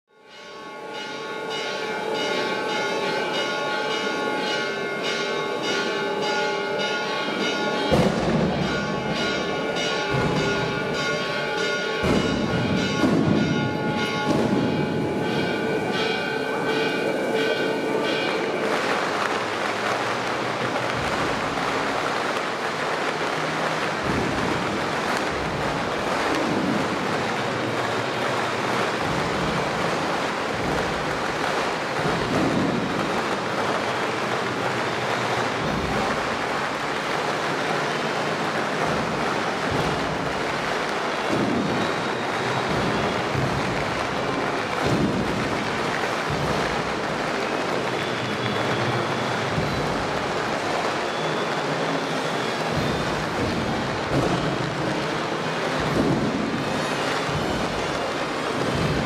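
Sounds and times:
church bells ringing: 0.1 - 59.0
loud bangs: 0.3 - 59.0
steady rushing noise: 7.9 - 59.0.

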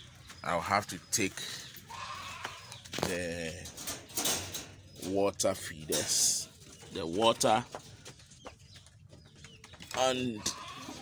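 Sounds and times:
faint bird calls: 1.5 - 2.9.

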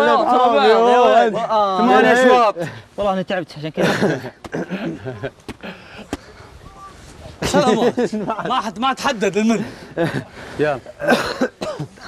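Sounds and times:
harsh cough-like burst: 11.0 - 12.0.

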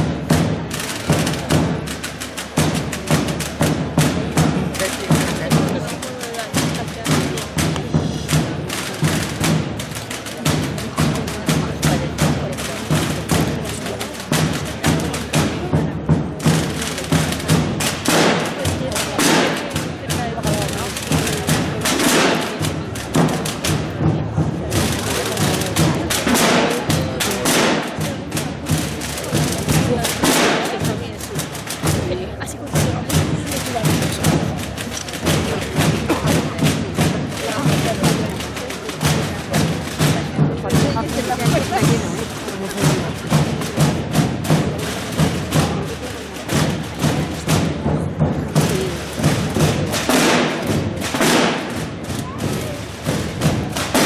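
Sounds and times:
drum corps beating drums: 0.0 - 54.0
murmur of crowd voices: 0.0 - 54.0.

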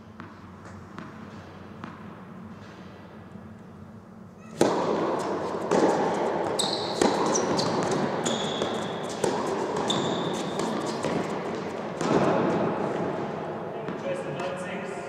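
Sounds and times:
steady noisy background: 0.0 - 15.0
tennis balls struck by rackets: 0.1 - 3.0, 4.5 - 14.6
shoes squeaking on court: 4.4 - 12.3.

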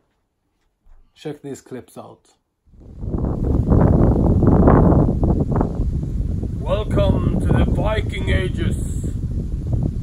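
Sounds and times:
wind blowing on microphone: 2.7 - 10.0.

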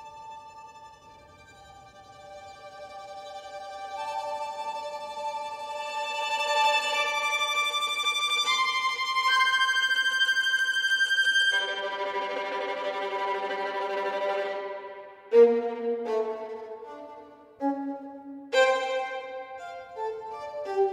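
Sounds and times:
violin playing tremolo: 0.0 - 20.9.

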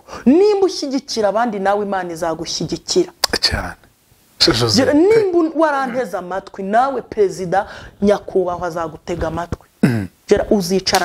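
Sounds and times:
woman speaking: 0.2 - 3.2, 4.7 - 11.0.

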